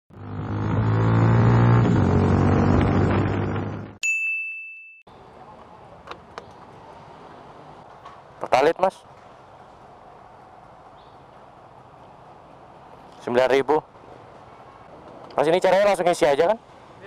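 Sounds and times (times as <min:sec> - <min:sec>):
bright ding: 0:04.0 - 0:05.1.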